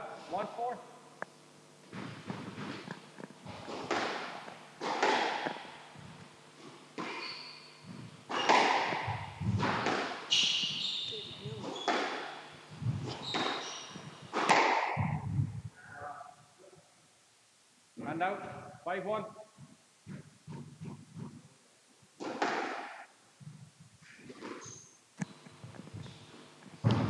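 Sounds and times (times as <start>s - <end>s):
squash ball hits: 3.5s - 5.8s, 6.9s - 7.2s, 7.9s - 10.8s, 11.4s - 15.2s, 22.2s - 23.1s
shoes squeaking on wooden floor: 6.0s - 9.7s, 10.3s - 14.4s.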